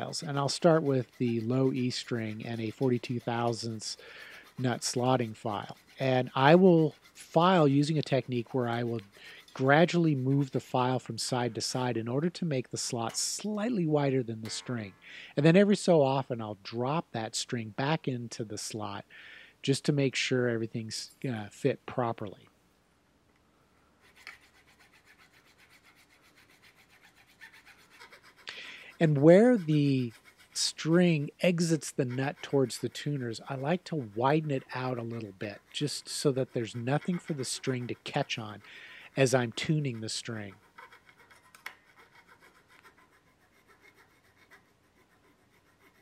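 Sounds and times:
file rasping in guitar nut slot: 24.2s - 46.0s.

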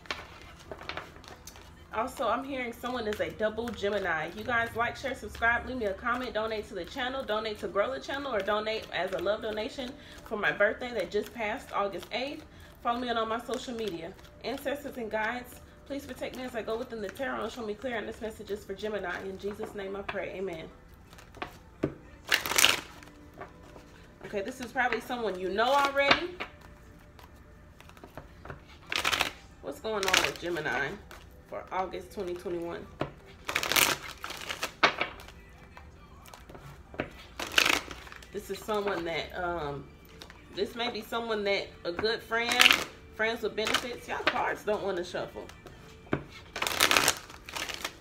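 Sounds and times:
cards shuffling: 0.0s - 4.6s, 5.2s - 20.2s, 20.9s - 39.0s, 42.5s - 43.0s, 43.6s - 44.4s, 45.0s - 48.0s.

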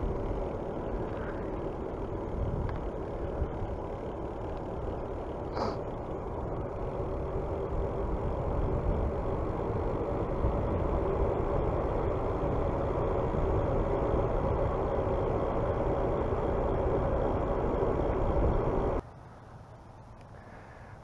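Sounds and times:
bicycle tyres rolling on asphalt: 0.0s - 20.9s
wind rushing over microphone: 5.5s - 19.0s.

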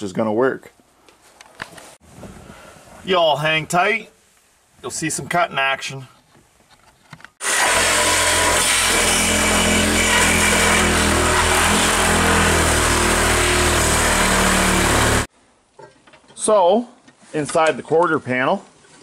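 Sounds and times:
power tool cutting sheet metal: 7.4s - 15.3s.

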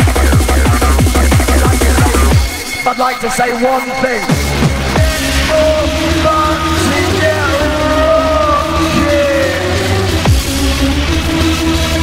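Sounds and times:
hardcore dance music: 0.0s - 12.0s.

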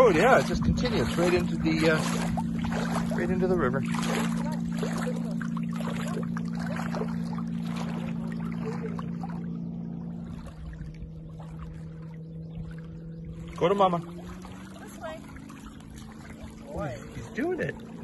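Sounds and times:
steady low hum: 0.0s - 18.0s
water lapping at shore: 0.0s - 18.0s.

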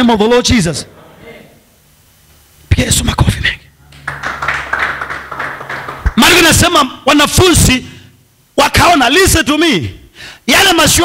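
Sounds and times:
low steady hum: 0.0s - 10.5s
crowd clapping: 3.9s - 6.5s.

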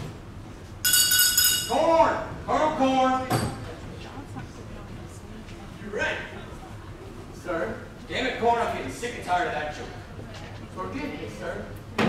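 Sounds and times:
bright ringing clink: 0.8s - 1.8s.

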